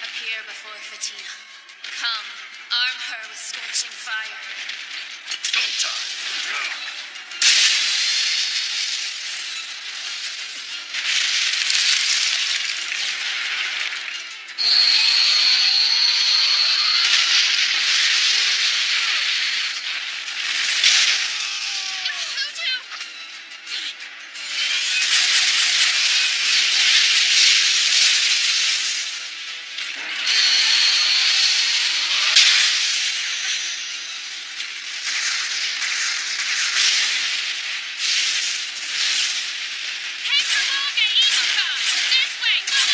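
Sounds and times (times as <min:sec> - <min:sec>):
music: 0:00.0 - 0:42.9
high steady ringing tone: 0:14.6 - 0:17.7.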